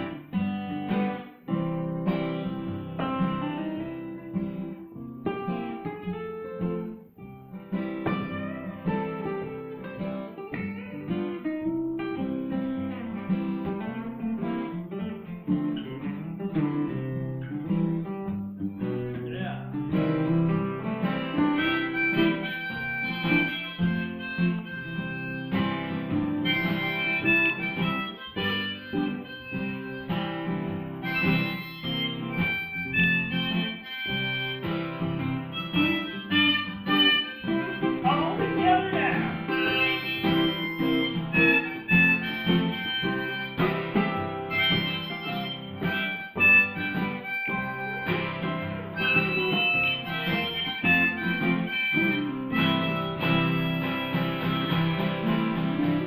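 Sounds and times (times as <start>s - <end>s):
harmonica melody: 0.0s - 56.0s
two acoustic guitars playing: 0.0s - 56.0s.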